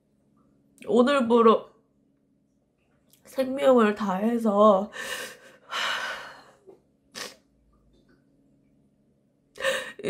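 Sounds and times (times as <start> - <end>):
woman breathing while crying: 4.9 - 6.6, 9.6 - 10.0.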